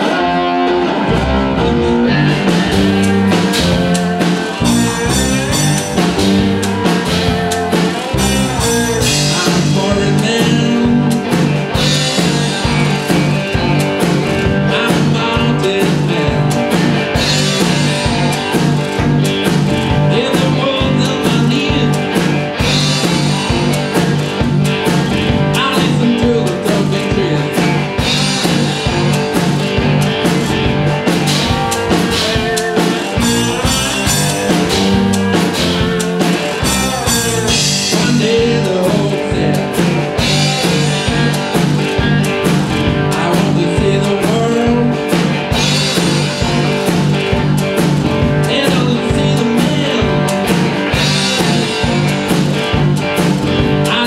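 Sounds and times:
electric guitars: 0.0s - 54.0s
drum kit steady beat: 1.0s - 54.0s.

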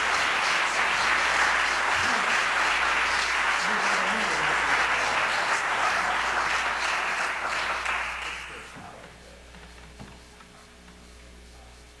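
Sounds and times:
audience applause: 0.0s - 8.8s
low hum and hiss: 0.0s - 12.0s.

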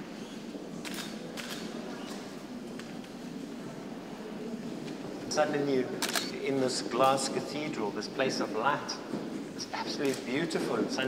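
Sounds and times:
man speaking: 5.3s - 9.0s, 9.6s - 11.0s.

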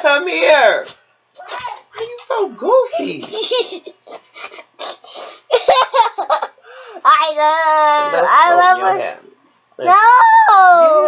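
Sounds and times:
boy laughing: 3.0s - 6.6s.

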